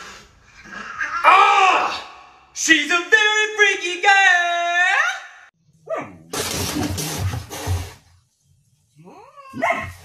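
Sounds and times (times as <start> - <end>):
dog barking: 9.6 - 10.0.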